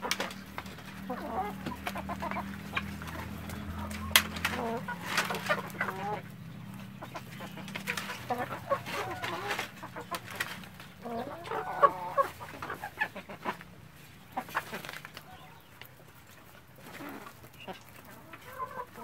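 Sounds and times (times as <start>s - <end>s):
hens clucking: 0.0s - 19.0s.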